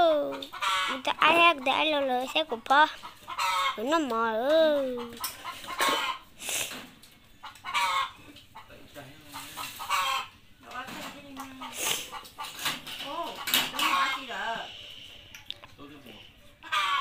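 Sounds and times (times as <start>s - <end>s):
chickens clucking: 0.0s - 15.4s, 16.3s - 17.0s.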